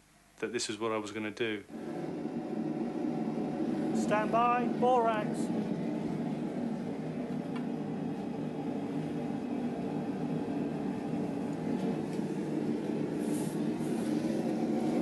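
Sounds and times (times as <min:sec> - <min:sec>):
furnace running: 0:01.4 - 0:15.0.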